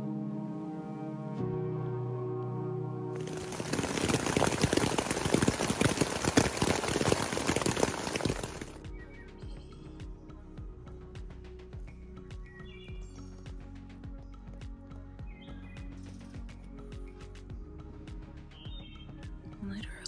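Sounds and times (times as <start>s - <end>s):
waterfall rushing: 3.2s - 8.7s
water drops tapping on tent fabric: 3.2s - 8.8s
birds chirping: 3.2s - 9.9s.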